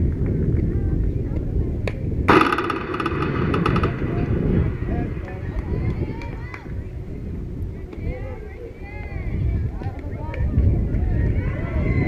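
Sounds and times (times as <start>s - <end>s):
voices of people: 0.6s - 12.0s.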